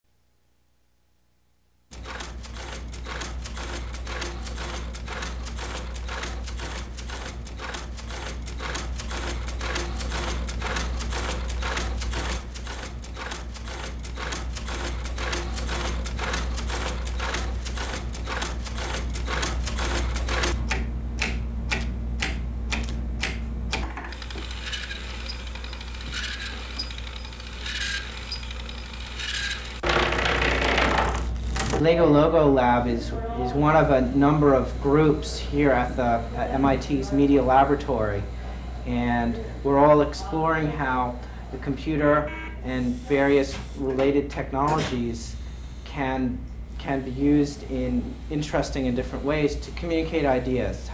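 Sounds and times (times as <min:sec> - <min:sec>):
steady low hum: 0:01.2 - 0:29.9, 0:31.0 - 0:50.9
gear mechanisms clicking: 0:01.9 - 0:29.9.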